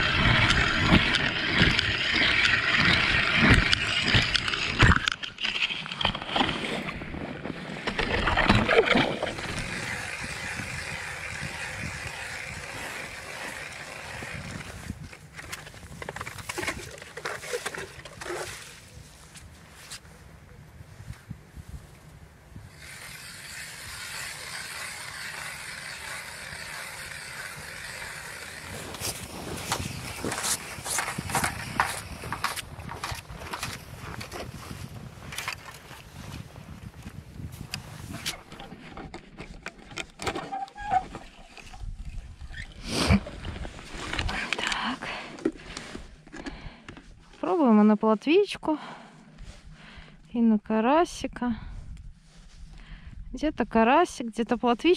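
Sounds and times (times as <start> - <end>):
ice auger grinding: 0.0 - 18.8, 22.7 - 36.8, 37.4 - 47.4.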